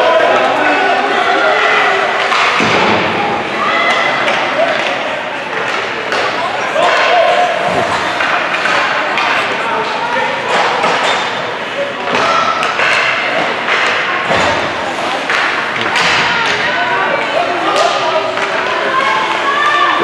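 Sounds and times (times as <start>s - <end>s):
spectators' voices and calls: 0.0s - 20.0s.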